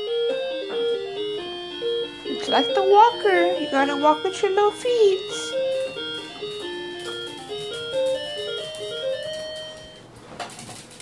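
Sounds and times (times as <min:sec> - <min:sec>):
toy beeping tune: 0:00.0 - 0:10.1.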